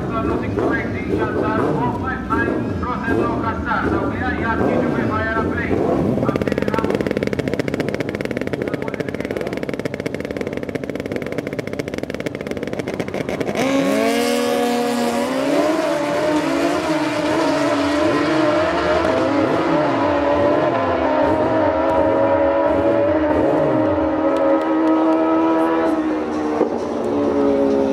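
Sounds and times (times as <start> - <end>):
motorcycle engines revving: 0.0 - 27.9.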